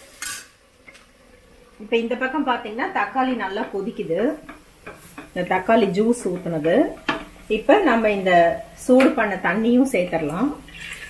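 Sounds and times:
spoon scraping iron pan: 3.4s - 7.6s.

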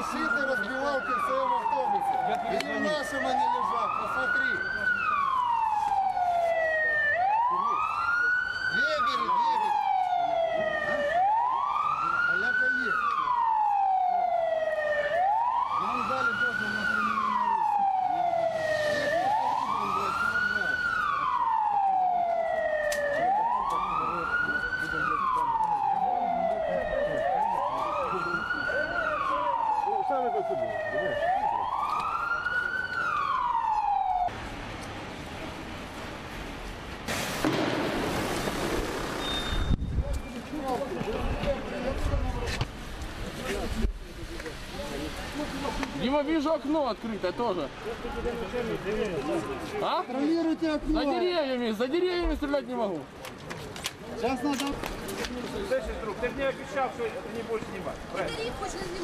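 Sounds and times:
vehicle siren wailing: 0.0s - 34.4s.

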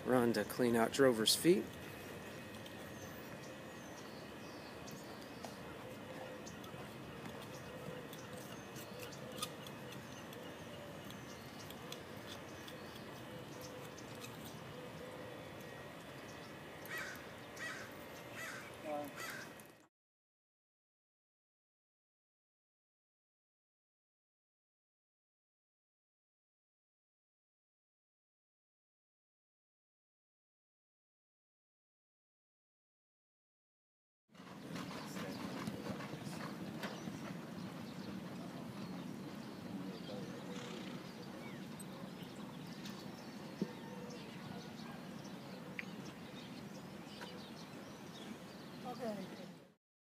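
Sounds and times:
bird calling: 0.0s - 19.8s, 34.4s - 49.5s
outdoor background noise: 0.0s - 19.9s, 34.3s - 49.8s
hoofbeats on dirt: 34.4s - 41.8s
low background rush: 34.4s - 49.8s.

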